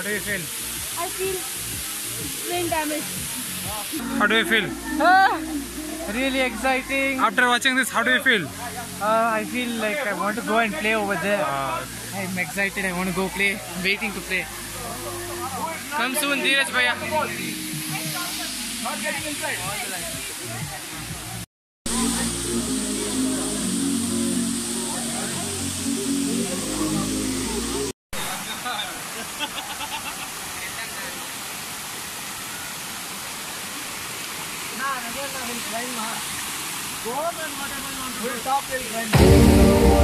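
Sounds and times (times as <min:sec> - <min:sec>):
background music: 0:00.0 - 0:20.7, 0:21.3 - 0:27.9, 0:39.1 - 0:40.0
waterfall rushing: 0:00.0 - 0:40.0.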